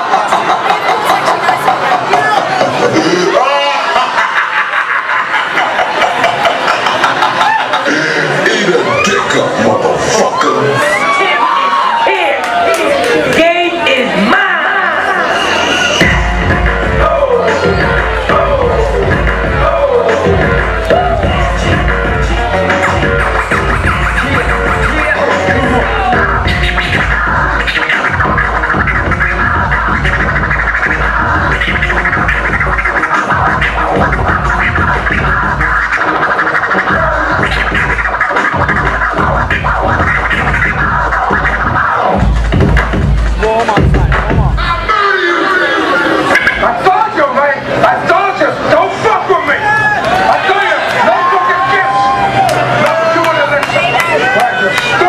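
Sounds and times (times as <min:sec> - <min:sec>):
vinyl records scratching: 0:15.0 - 0:49.2
heavy hip hop beat: 0:15.9 - 0:47.2.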